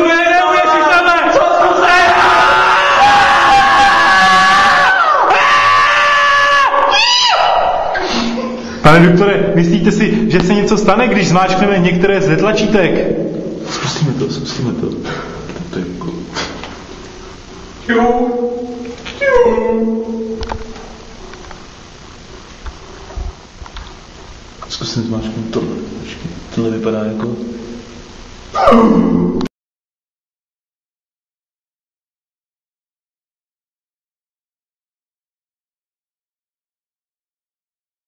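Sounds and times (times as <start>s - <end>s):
voices holding a loud note: 0.0s - 9.6s, 17.9s - 21.1s
low hum: 7.6s - 29.5s.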